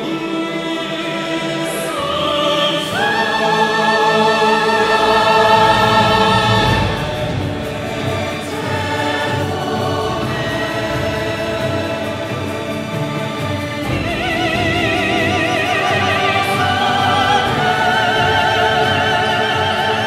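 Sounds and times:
full orchestra playing: 0:00.0 - 0:20.0
vocal soloists singing: 0:00.0 - 0:20.0.

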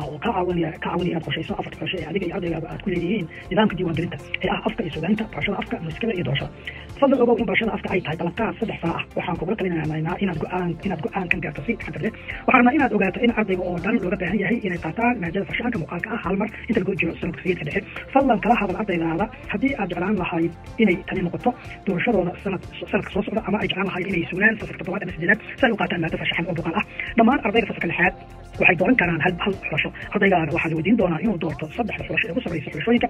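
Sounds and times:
background music: 0:00.0 - 0:33.0
person speaking: 0:00.0 - 0:33.0
person talking: 0:00.0 - 0:33.0.

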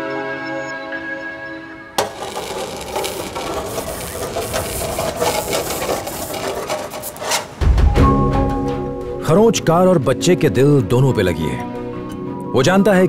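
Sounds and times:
metal point scratching car paint: 0:02.0 - 0:07.8.

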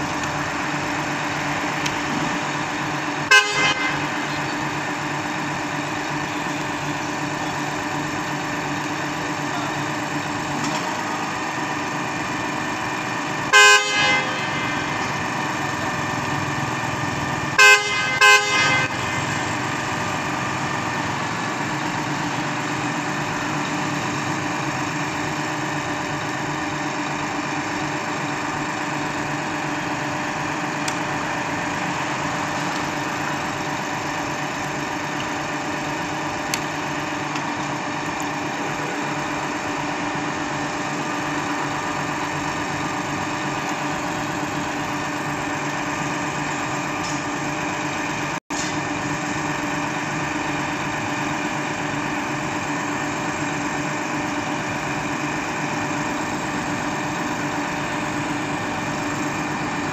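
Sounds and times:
pump engine and hydraulics running: 0:00.0 - 0:59.9
vehicle horn: 0:03.2 - 0:04.3, 0:13.5 - 0:15.2, 0:17.5 - 0:19.5.

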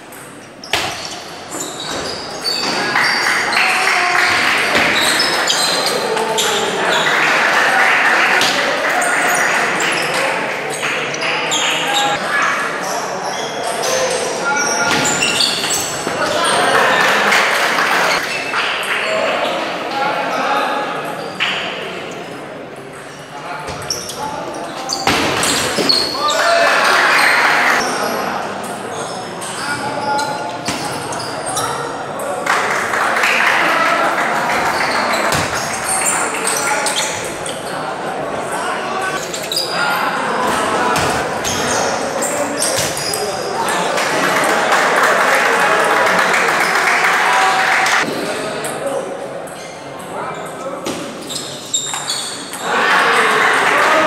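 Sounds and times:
chatter of voices echoing: 0:00.0 - 0:54.0.

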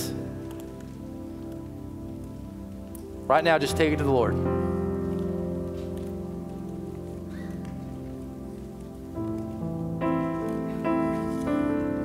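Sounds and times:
slow keyboard chords: 0:00.0 - 0:12.0.

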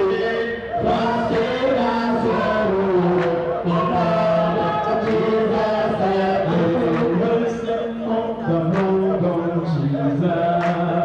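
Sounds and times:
group singing a chant-like hymn: 0:00.0 - 0:11.0.

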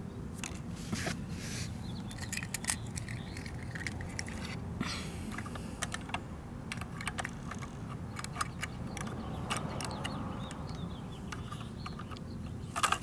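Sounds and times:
plastic toy clicks and taps: 0:05.3 - 0:12.2, 0:12.8 - 0:13.0.

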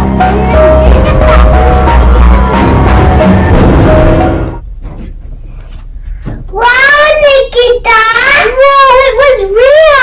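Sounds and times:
child singing in wavering notes: 0:06.6 - 0:10.0.

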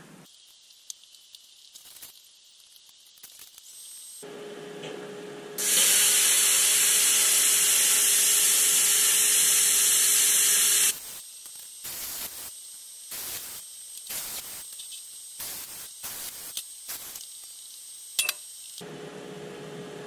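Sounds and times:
short bursts of hiss: 0:05.6 - 0:11.2, 0:11.8 - 0:17.3
plasma cutter hissing: 0:05.6 - 0:18.8.

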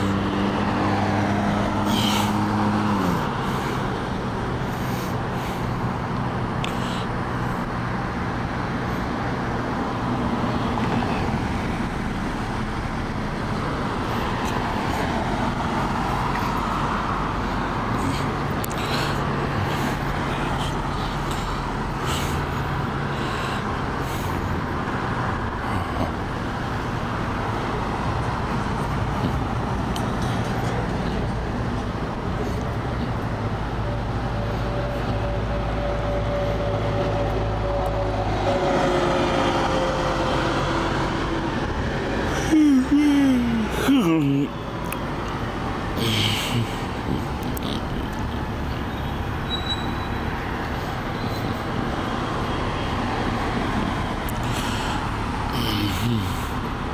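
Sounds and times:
cars passing: 0:00.0 - 0:56.9
low traffic rumble: 0:00.0 - 0:56.9.

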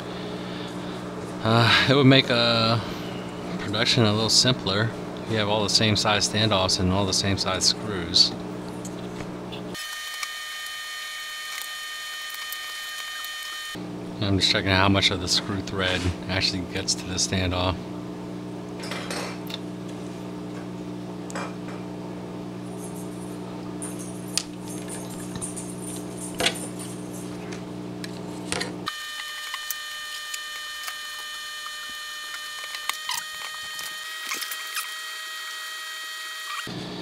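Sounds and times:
steady hum: 0:00.0 - 0:37.0.

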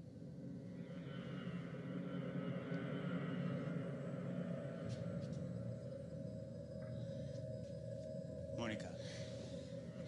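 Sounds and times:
low dark rumbling drone: 0:00.0 - 0:10.0.

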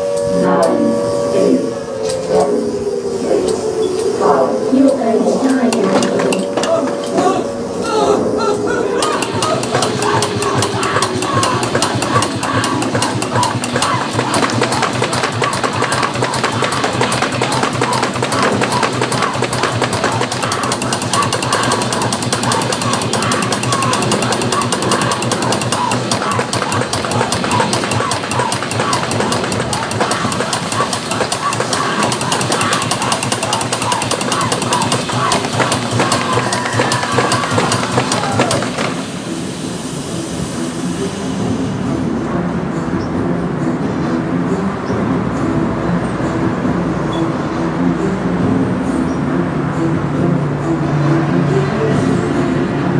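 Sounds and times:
wavering voice-like cry: 0:00.0 - 0:38.9.

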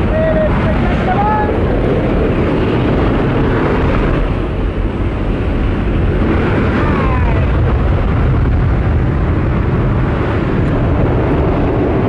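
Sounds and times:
plane engine: 0:00.0 - 0:12.0
wind rushing through open door: 0:00.0 - 0:12.0.

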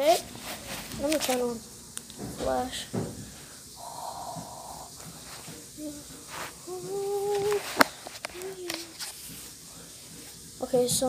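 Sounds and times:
child humming: 0:03.8 - 0:05.0, 0:05.7 - 0:09.0.

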